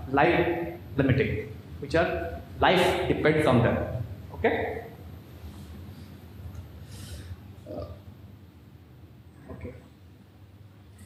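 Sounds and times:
low room hum: 0.0 - 11.0
man breathing sharply: 6.8 - 7.4.

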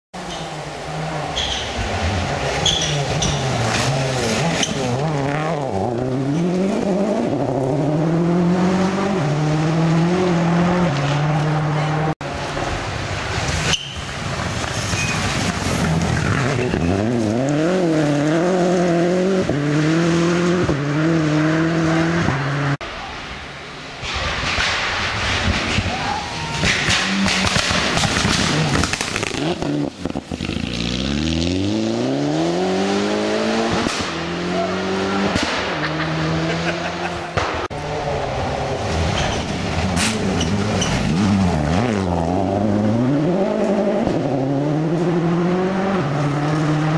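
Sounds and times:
rally car engines revving: 0.2 - 22.8, 26.5 - 46.9
gravel spraying from tyres: 12.7 - 16.7.

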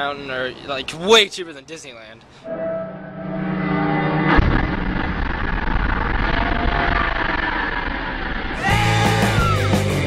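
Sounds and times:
fireball roar: 3.2 - 9.2
rock music: 8.6 - 10.0.

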